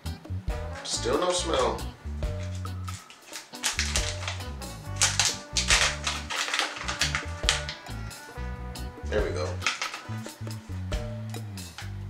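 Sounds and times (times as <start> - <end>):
background music with bass line: 0.0 - 3.1, 3.7 - 12.0
plastic pouch crinkling and tearing: 2.4 - 7.9, 9.5 - 10.4.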